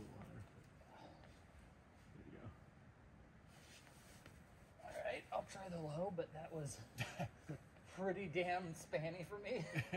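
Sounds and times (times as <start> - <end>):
faint background noise: 0.0 - 9.9.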